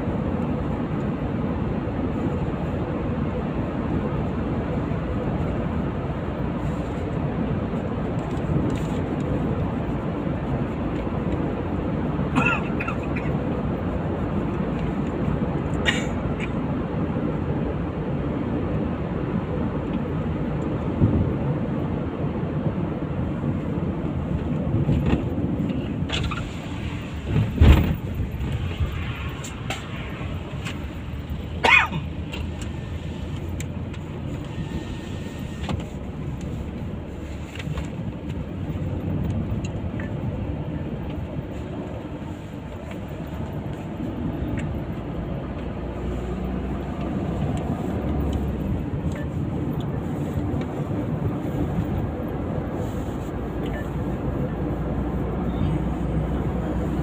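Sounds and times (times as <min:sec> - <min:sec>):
car road and engine noise: 0:00.0 - 0:57.0.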